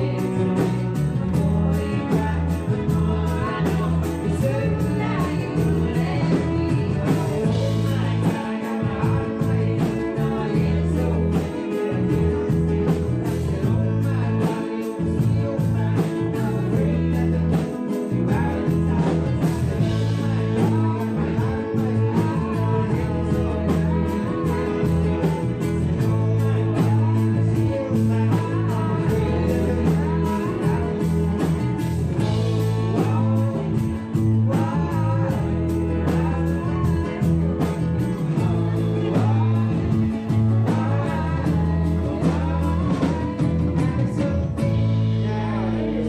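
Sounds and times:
bass: 0.0s - 46.0s
drums on a steady beat: 0.0s - 46.0s
electric keyboard: 0.0s - 46.0s
lead vocals: 0.0s - 46.0s.

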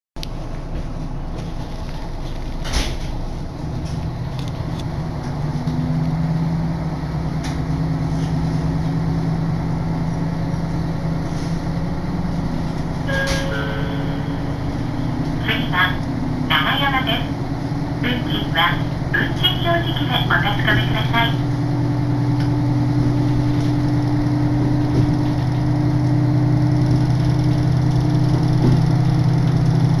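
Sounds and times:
train engine hum: 0.2s - 30.0s
train running: 0.2s - 30.0s
onboard announcement: 12.5s - 23.1s
short tone: 13.0s - 15.3s.

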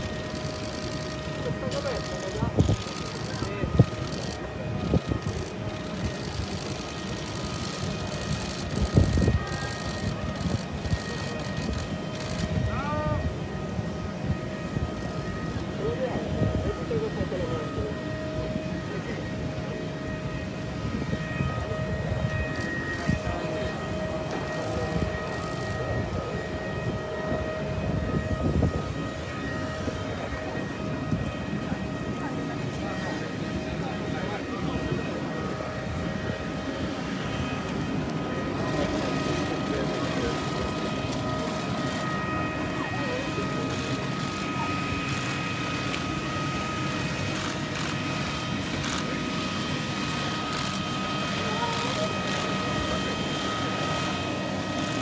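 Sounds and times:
jet engine whine and rumble: 0.0s - 55.0s.

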